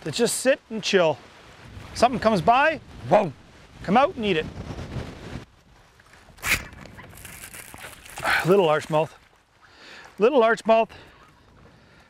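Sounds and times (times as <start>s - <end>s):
fish thrashing in water: 6.4s - 9.4s.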